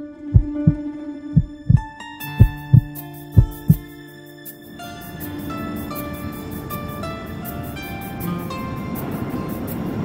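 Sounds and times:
heartbeat double thump: 0.4s - 0.8s, 1.4s - 1.8s, 2.4s - 3.8s
held low tone: 0.4s - 0.8s, 1.4s - 1.8s, 2.4s - 3.8s
music with chiming notes and bass: 2.3s - 9.7s.

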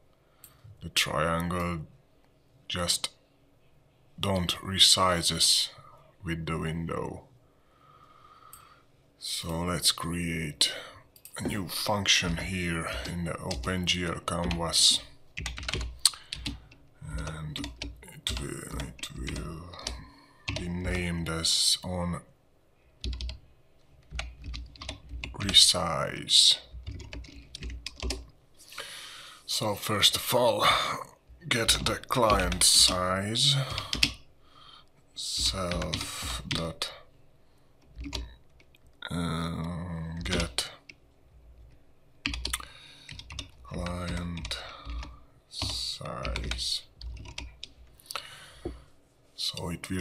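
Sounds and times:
computer keyboard typing: 12.3s - 21.0s, 23.0s - 23.4s, 24.0s - 25.8s, 26.6s - 28.3s, 31.6s - 34.2s, 35.4s - 36.7s, 37.8s - 38.8s, 40.2s - 41.0s, 41.6s - 47.8s.

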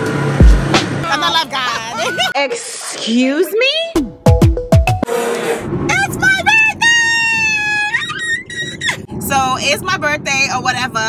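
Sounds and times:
woman's excited sung squeal: 7.2s - 9.1s.

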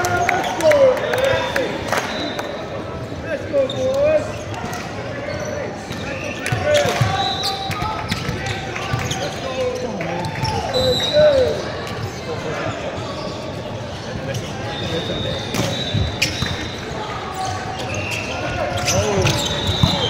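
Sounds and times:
shoes squeaking on court floor: 3.6s - 20.0s.

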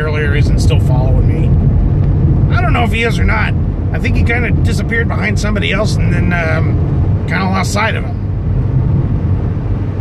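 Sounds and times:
car cabin engine and tyre drone: 0.0s - 10.0s.

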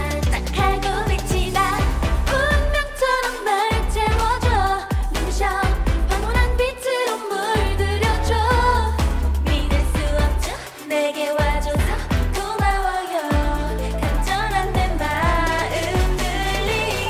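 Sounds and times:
driving beat with heavy bass: 0.0s - 17.0s
women singing dance-pop song: 0.0s - 17.0s.

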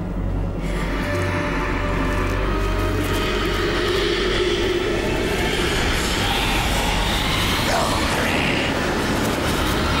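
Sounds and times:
loud rumbling drone: 0.0s - 10.0s.

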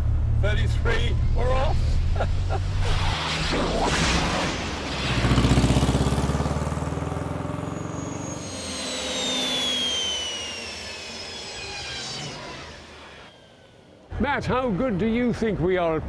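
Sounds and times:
van engine passing by: 0.0s - 10.0s
high whine gliding downward: 0.0s - 14.9s.

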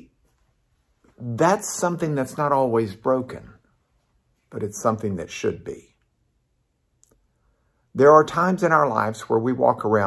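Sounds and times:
man's voice: 1.2s - 3.6s, 4.5s - 6.0s, 8.0s - 10.0s.

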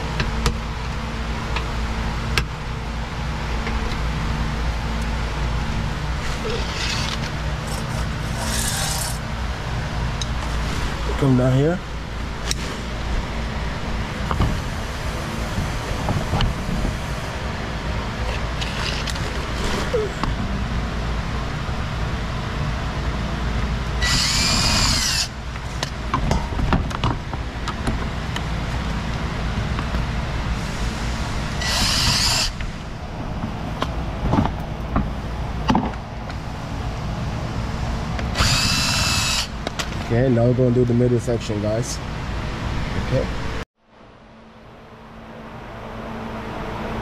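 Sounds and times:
steady low rumble: 0.0s - 47.0s
pneumatic air tool bursts: 6.2s - 9.2s, 24.0s - 25.4s, 30.6s - 32.7s, 38.3s - 39.6s.

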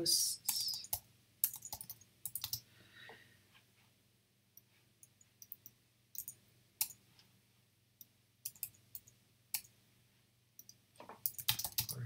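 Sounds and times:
computer mouse clicks: 0.5s - 2.6s, 4.6s - 7.0s, 8.0s - 9.7s, 10.6s - 12.0s
keyboard typing: 0.5s - 2.6s, 5.0s - 7.0s, 8.4s - 9.7s, 10.6s - 12.0s.

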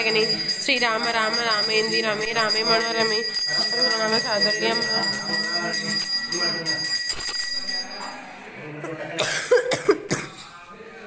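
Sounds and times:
puja bell ringing: 0.0s - 8.4s
voices: 0.0s - 11.0s.

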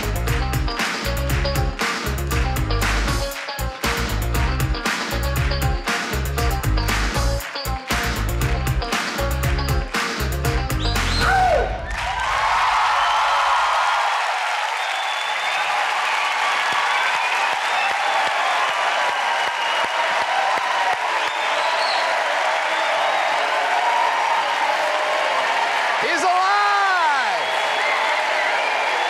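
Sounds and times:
stage music bass: 0.0s - 11.8s
audience applauding: 0.0s - 29.0s
voices cheering: 11.0s - 29.0s.

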